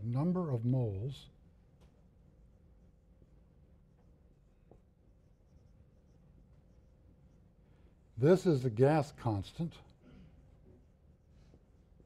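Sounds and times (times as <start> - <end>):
quiet room hum: 0.0 - 12.0
marker squeaking on whiteboard: 4.6 - 7.4.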